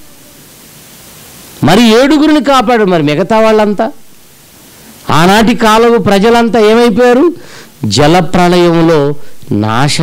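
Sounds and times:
faint hiss: 0.0s - 10.0s
man preaching into microphone: 1.6s - 4.0s, 5.0s - 10.0s.

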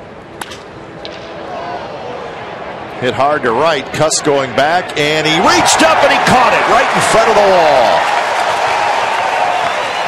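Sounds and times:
ballpark crowd noise: 0.0s - 10.0s
bat cracking against ball: 0.4s - 1.3s.

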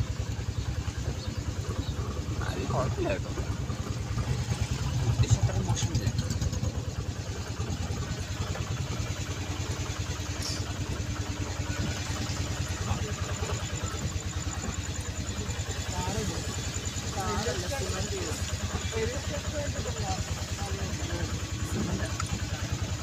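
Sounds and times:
vehicle engine running: 0.0s - 23.0s.

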